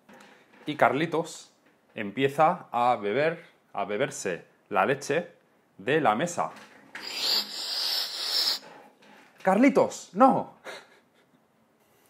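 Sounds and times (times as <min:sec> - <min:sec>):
person slurping air: 0:07.0 - 0:08.7.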